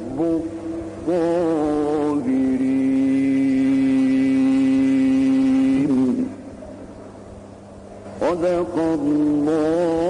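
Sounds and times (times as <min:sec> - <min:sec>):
man reciting in long melodic note: 0:00.0 - 0:06.5, 0:08.2 - 0:10.0
low hall hum: 0:00.0 - 0:10.0.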